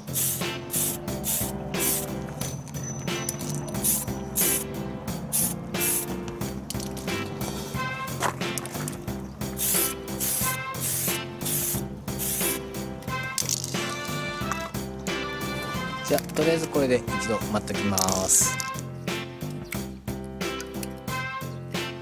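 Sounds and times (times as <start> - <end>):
spray can hissing in bursts: 0.0 - 2.4, 3.4 - 6.2, 9.4 - 14.2
background music: 0.0 - 22.0.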